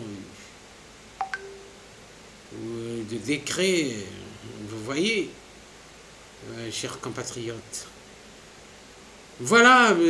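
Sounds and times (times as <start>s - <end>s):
electronic beeps: 1.2s - 1.8s.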